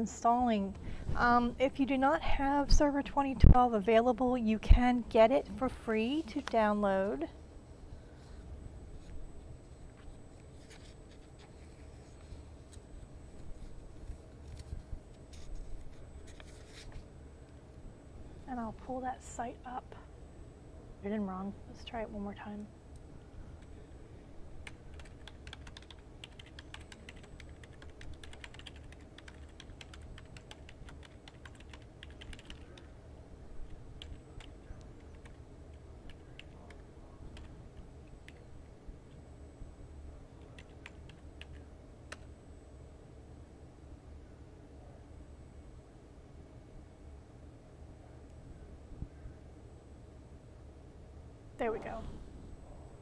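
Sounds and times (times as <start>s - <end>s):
low steady hum: 0.0s - 53.0s
computer keyboard typing: 24.6s - 32.9s, 34.0s - 34.5s, 35.1s - 35.4s, 36.1s - 36.8s, 38.1s - 38.4s, 40.4s - 42.3s.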